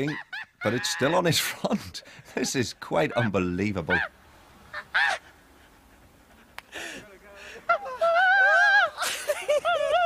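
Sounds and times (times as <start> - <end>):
faint street background: 0.0 - 10.0.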